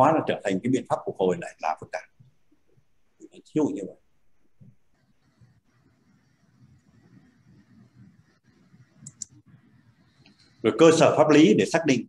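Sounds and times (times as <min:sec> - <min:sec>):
low room noise: 0:00.0 - 0:12.0
faint computer clicks: 0:09.0 - 0:09.5.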